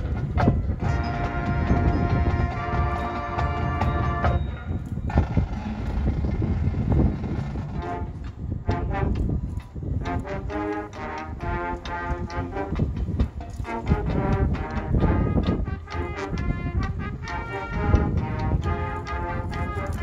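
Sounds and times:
loud brass chords: 0.8 - 4.5, 7.5 - 9.4, 10.0 - 20.0.

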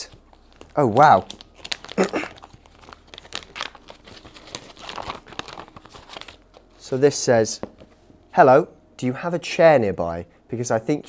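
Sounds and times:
paper and cardboard rustling: 0.0 - 8.0.

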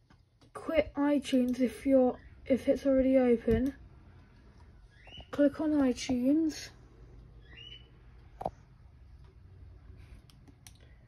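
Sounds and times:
low steady hum: 0.0 - 11.0
computer mouse clicking: 10.0 - 10.9.

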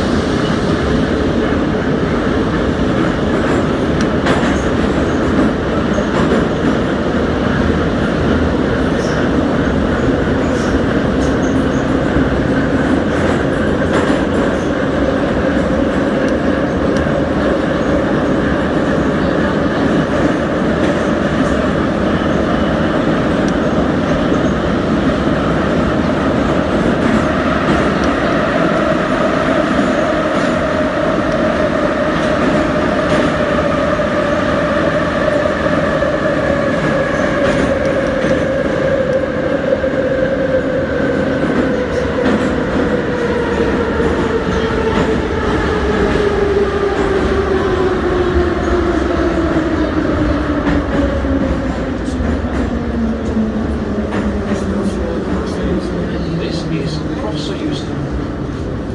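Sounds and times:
train wheels on rails: 0.0 - 58.9.

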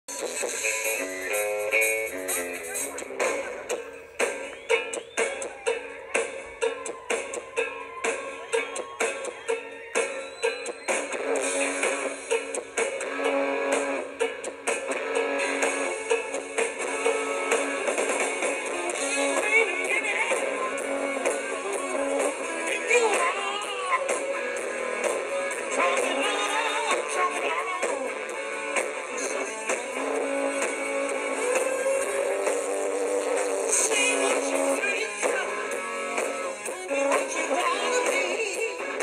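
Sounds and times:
electric guitars: 0.1 - 39.0
steady drum beat: 0.1 - 39.0.

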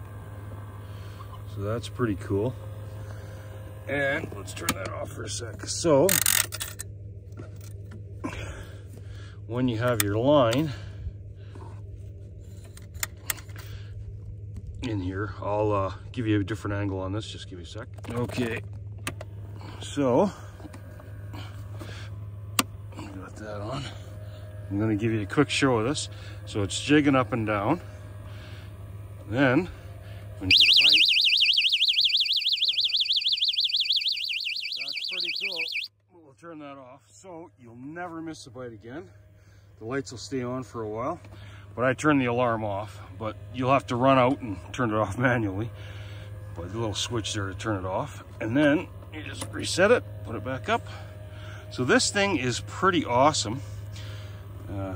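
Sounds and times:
steady low hum: 0.0 - 54.9
warbling electronic bite alarm: 30.4 - 35.9.

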